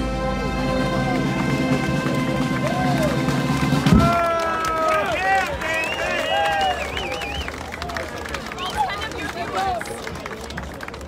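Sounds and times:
brass band chord: 0:00.0 - 0:04.1.

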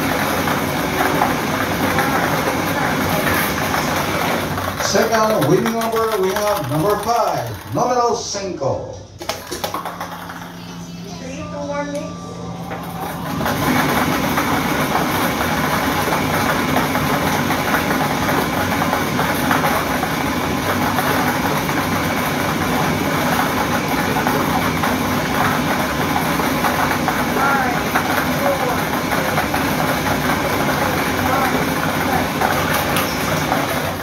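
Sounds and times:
plastic balls rattling: 0:00.0 - 0:08.0
motor running: 0:00.0 - 0:08.5, 0:09.2 - 0:34.0.

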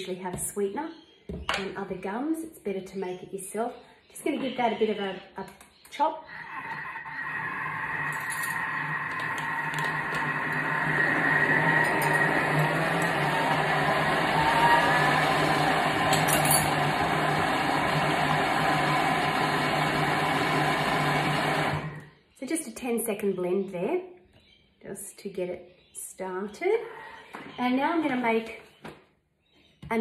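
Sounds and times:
blender motor whirring: 0:06.3 - 0:22.1.

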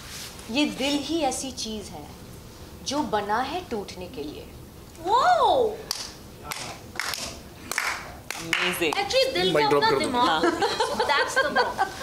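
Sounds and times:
hand claps: 0:05.9 - 0:09.1.

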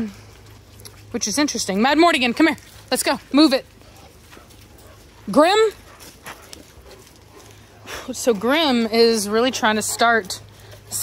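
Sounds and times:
dog paws walking on gravel: 0:00.0 - 0:11.0.

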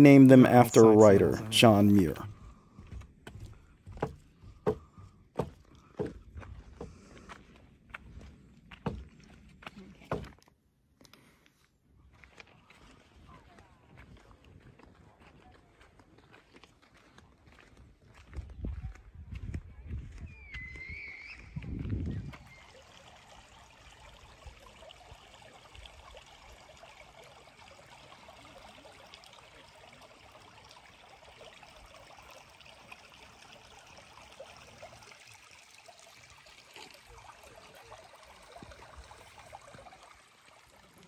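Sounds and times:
creek trickling over stones: 0:00.0 - 0:10.4, 0:12.0 - 0:19.6, 0:20.7 - 0:41.0.

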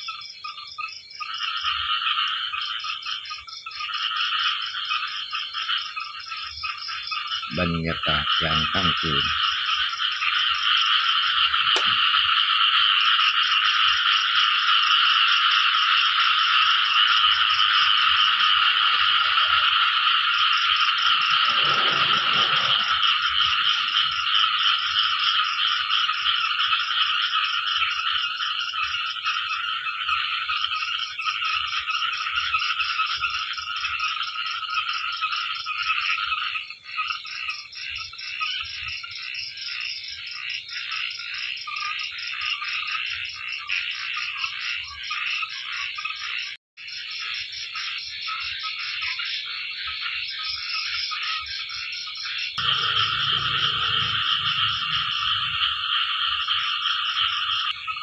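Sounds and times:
frogs chorus calling: 0:00.0 - 0:58.0.

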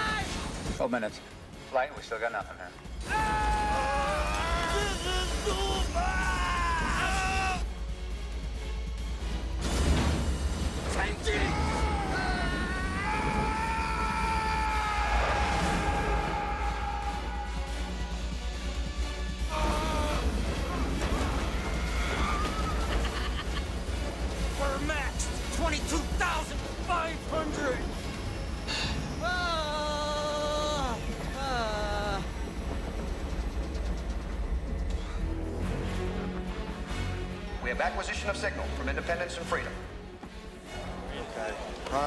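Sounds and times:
orchestral film score: 0:00.0 - 0:42.0
men yelling in strain: 0:03.0 - 0:07.7, 0:11.1 - 0:17.8, 0:19.5 - 0:22.9, 0:29.2 - 0:32.3.

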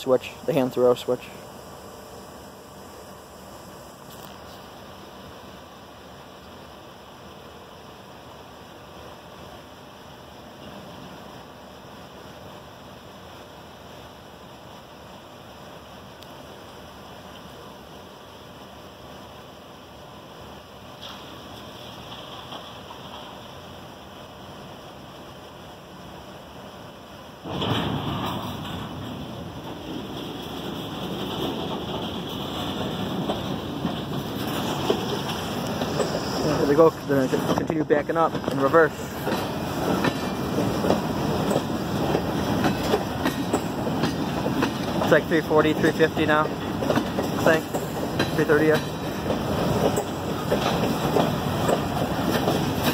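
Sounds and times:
steel wheels rumbling on rail: 0:00.0 - 0:52.9.

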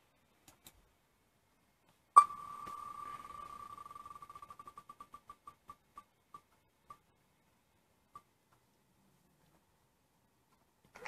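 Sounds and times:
rapid ticks of spinning wheel: 0:03.2 - 0:07.0.

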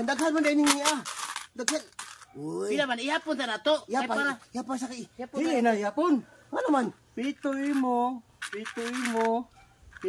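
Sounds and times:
coins clinking on a plate: 0:00.0 - 0:02.3, 0:07.2 - 0:10.0.

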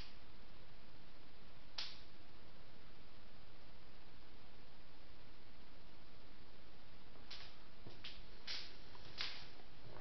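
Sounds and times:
steady hiss: 0:00.0 - 0:10.0.

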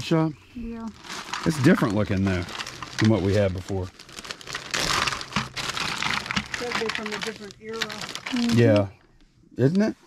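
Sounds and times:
plastic bag crinkling: 0:00.8 - 0:08.9.

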